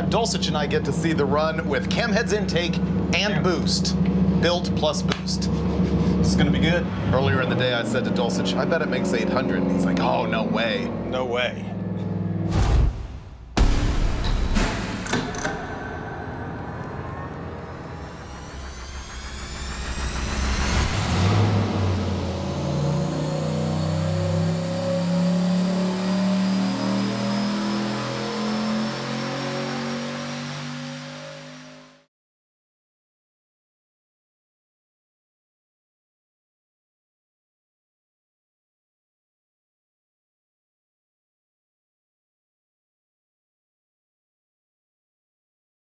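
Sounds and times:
engine note climbing in pitch: 0.0 - 12.6, 15.3 - 32.1
loud engine bursts: 13.6 - 32.0.

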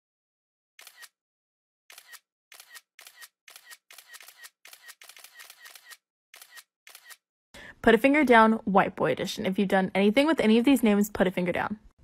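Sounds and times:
woman speaking: 7.8 - 11.9.

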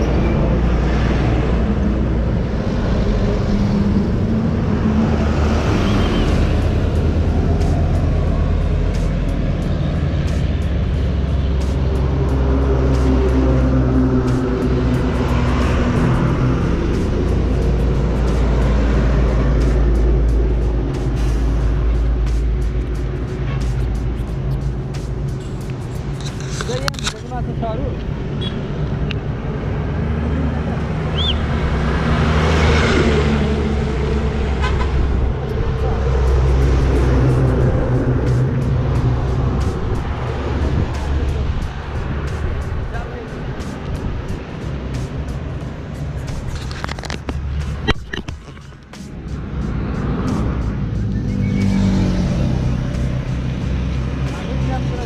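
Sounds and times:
heavy diesel trucks passing: 0.0 - 55.0
traffic noise: 0.0 - 55.0.

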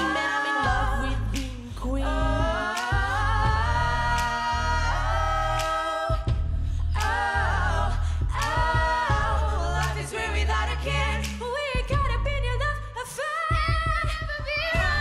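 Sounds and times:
backing track with bass: 0.0 - 15.0
woman singing pop song: 0.0 - 15.0.

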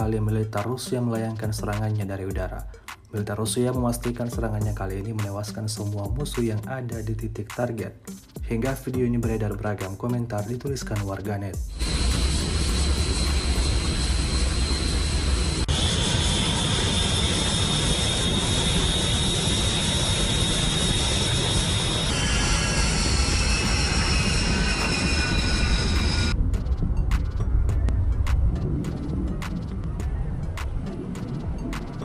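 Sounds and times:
jet engines roaring: 11.7 - 27.4
high-pitched turbine whine: 11.7 - 32.0.

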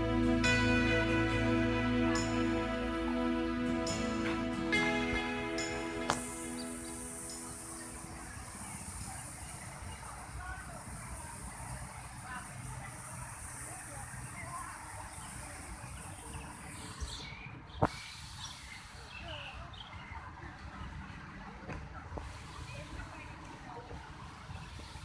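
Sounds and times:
background music: 0.0 - 8.3
steady high hiss: 0.0 - 17.0
distant traffic: 0.0 - 25.0
faint distant voices: 0.0 - 25.0.

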